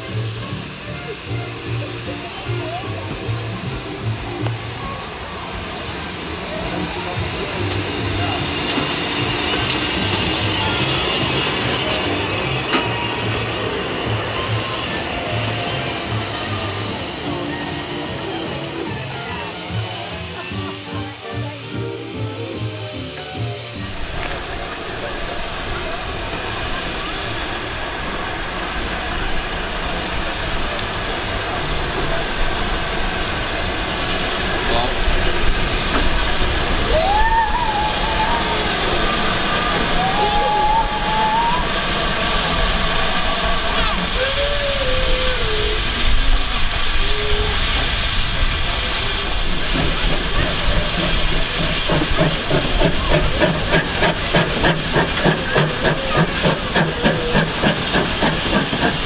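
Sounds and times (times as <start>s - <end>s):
crowd voices: 0.0s - 59.0s
locomotive low rumble: 0.0s - 59.0s
steam locomotive hissing: 0.0s - 59.0s.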